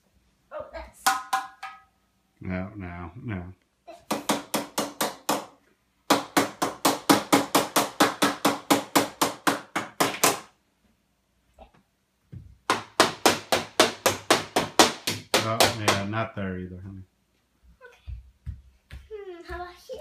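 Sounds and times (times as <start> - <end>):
toy hammer banging: 1.0 - 2.0.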